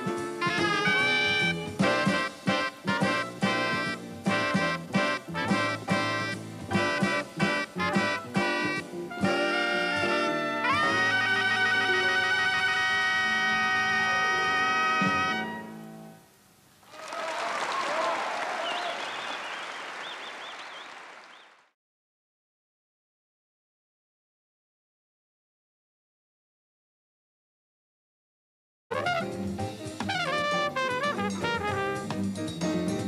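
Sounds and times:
jazz band horns playing: 0.0s - 16.2s, 28.9s - 33.0s
audience applause: 16.8s - 21.7s.

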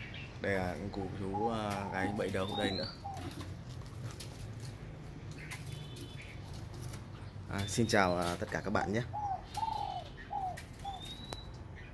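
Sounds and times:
dove cooing: 1.0s - 3.8s, 8.2s - 11.4s.

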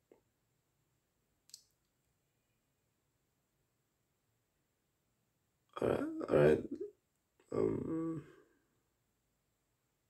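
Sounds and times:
faint sharp click: 1.4s - 2.0s.

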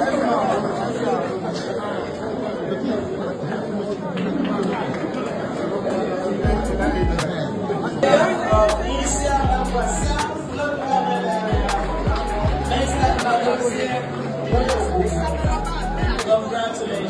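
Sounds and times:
crowd chatter: 0.0s - 17.0s
music: 6.4s - 17.0s.

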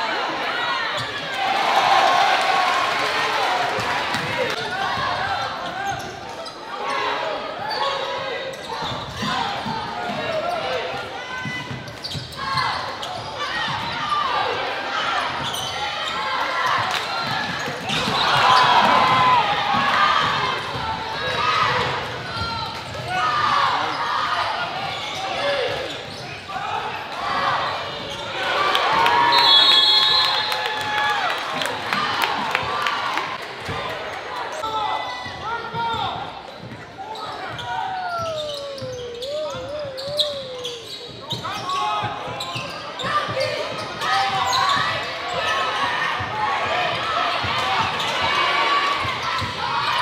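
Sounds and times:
crowd and players calling: 0.0s - 50.0s
basketball bouncing on court: 35.2s - 41.4s.

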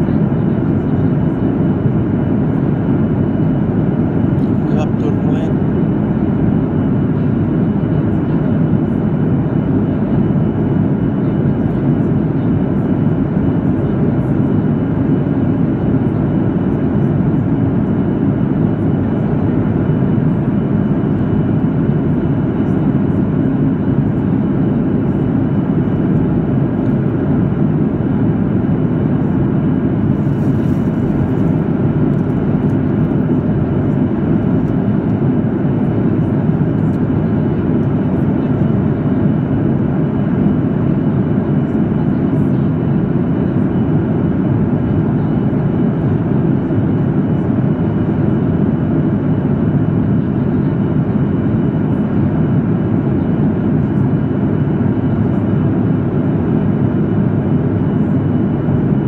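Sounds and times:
airplane cabin roar: 0.0s - 59.0s.

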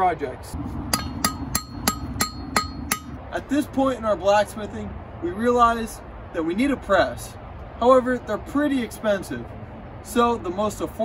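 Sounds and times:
hammer striking steel on anvil: 0.9s - 3.2s.

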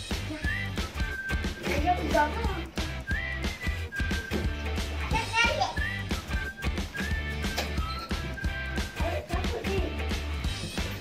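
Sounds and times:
background music with beat: 0.0s - 11.0s
child's voice: 0.1s - 0.7s, 1.6s - 2.8s, 5.0s - 6.0s, 9.0s - 10.0s.

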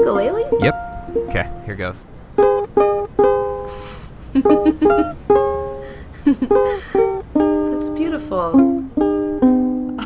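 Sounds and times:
ukulele playing: 0.0s - 10.0s.

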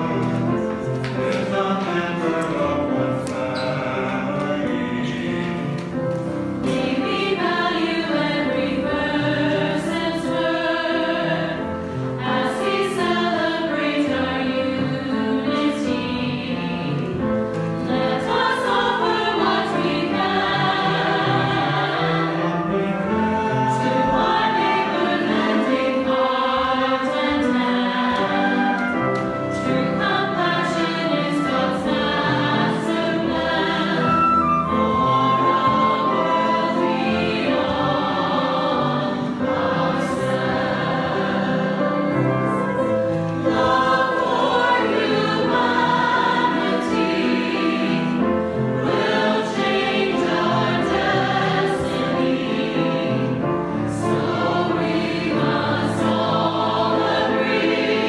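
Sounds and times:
mixed choir singing: 0.0s - 58.0s
flute: 23.1s - 25.1s, 28.2s - 30.0s, 34.0s - 38.1s.

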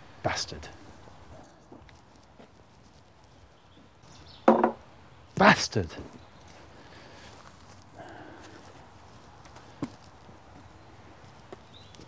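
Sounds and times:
wooden balls knocking: 4.4s - 4.8s.

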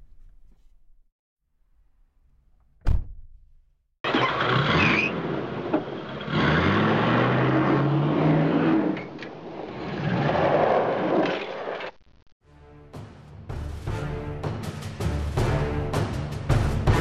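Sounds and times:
engine revving: 4.0s - 11.2s.

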